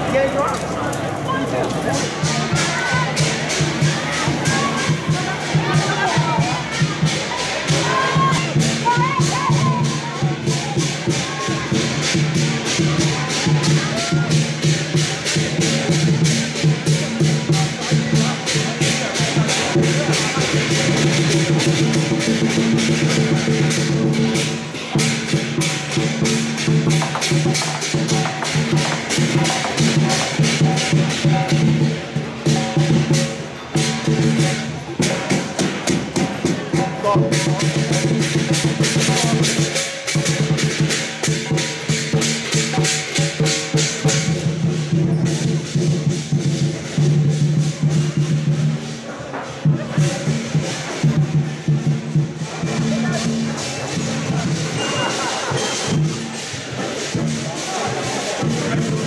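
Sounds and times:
crowd voices: 0:00.0 - 0:59.0
cymbals clashing: 0:00.0 - 0:59.0
large drum beating: 0:01.6 - 0:59.0.

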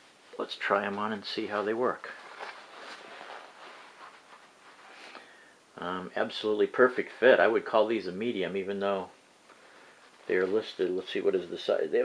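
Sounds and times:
glove rustling: 0:00.6 - 0:05.3, 0:09.5 - 0:11.2.

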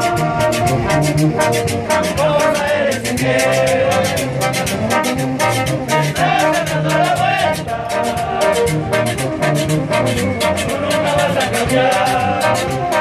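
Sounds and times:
brass band playing: 0:00.0 - 0:13.0
fast drum beat: 0:00.0 - 0:13.0.

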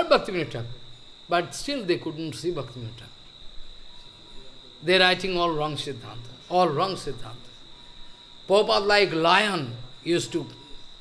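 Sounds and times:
man talking: 0:00.0 - 0:03.2, 0:04.5 - 0:07.6, 0:08.5 - 0:10.7.

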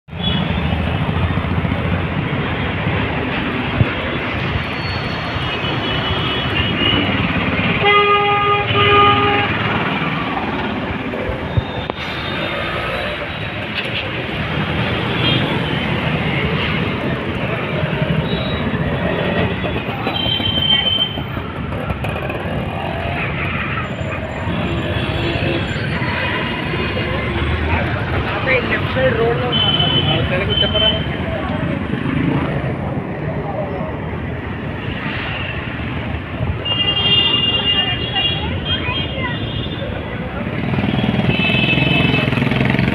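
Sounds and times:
street traffic engine noise: 0:00.1 - 0:42.9
vehicle horns tooting: 0:07.8 - 0:09.8, 0:29.4 - 0:31.1.

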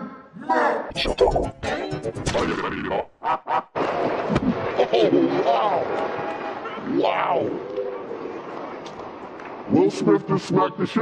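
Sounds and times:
distorted man's voice exclaiming: 0:00.0 - 0:01.6, 0:02.3 - 0:03.1.

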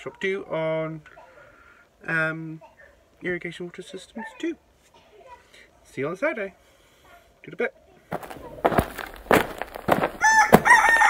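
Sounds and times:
rooster crowing: 0:10.0 - 0:11.0.

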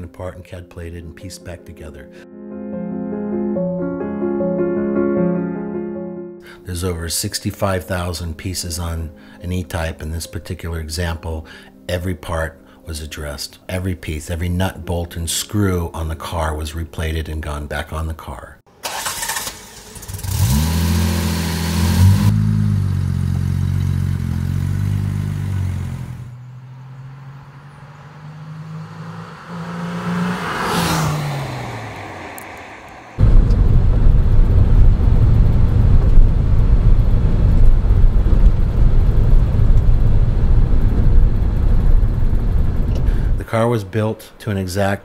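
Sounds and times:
car engine starting and revving: 0:18.8 - 0:43.4
car passing at speed: 0:25.0 - 0:36.2
engine and road noise inside car: 0:33.2 - 0:43.1.

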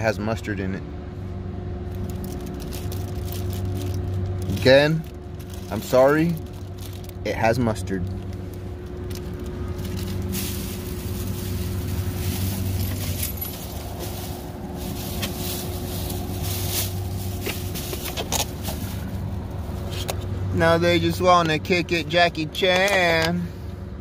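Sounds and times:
vehicle engine idling: 0:00.0 - 0:24.0
plastic bag crinkling: 0:01.9 - 0:19.9.

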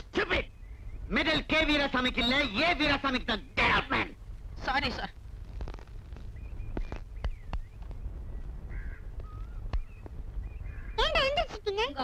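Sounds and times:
low steady hum: 0:00.0 - 0:12.0
bird calls and chirps: 0:00.4 - 0:03.6, 0:06.2 - 0:11.8
bird caw: 0:08.6 - 0:10.0, 0:10.6 - 0:11.0.

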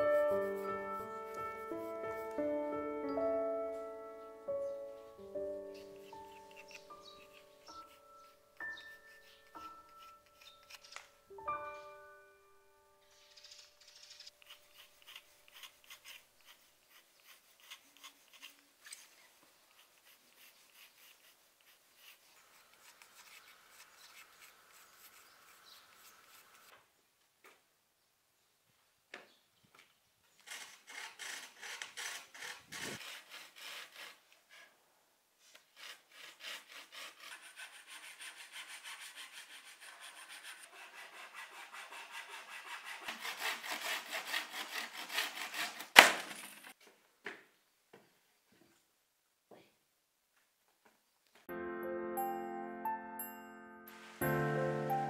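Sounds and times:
pencil scratching on board: 0:05.8 - 0:11.0, 0:14.0 - 0:26.7, 0:30.4 - 0:34.7, 0:35.5 - 0:46.0
handsaw cutting wood: 0:14.3 - 0:19.1, 0:19.8 - 0:26.7, 0:30.4 - 0:34.7, 0:35.5 - 0:46.5
wood cracking: 0:45.6 - 0:46.7.

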